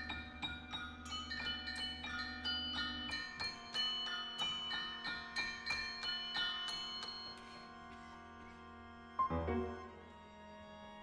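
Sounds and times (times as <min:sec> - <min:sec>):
mallet percussion notes ringing: 0:00.0 - 0:07.8.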